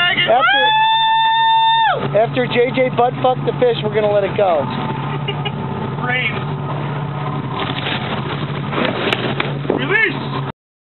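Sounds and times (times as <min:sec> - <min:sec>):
boat engine running: 0:00.0 - 0:10.5
water and wind noise: 0:00.0 - 0:10.5
fish splashing into water: 0:07.4 - 0:09.6.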